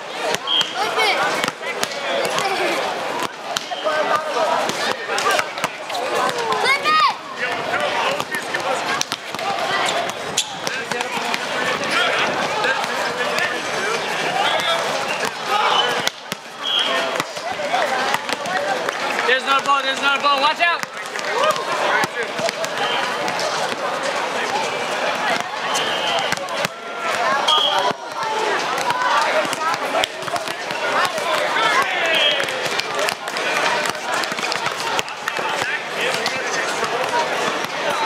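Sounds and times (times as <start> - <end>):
chatter and calls of people: 0.0 - 38.0
volleyball being struck: 0.2 - 2.6, 3.2 - 6.6, 26.1 - 37.8.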